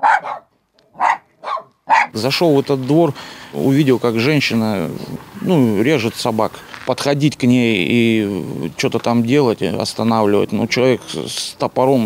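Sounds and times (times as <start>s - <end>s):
small dog barking: 0.0s - 2.2s.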